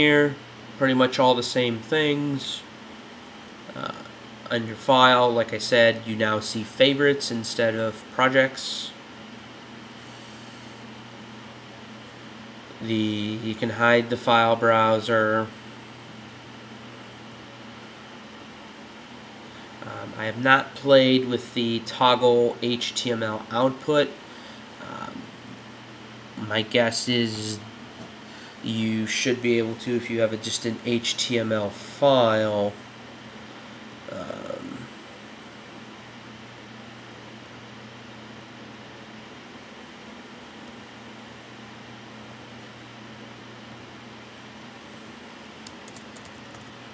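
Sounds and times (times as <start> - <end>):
low even hum: 0.0 - 46.9.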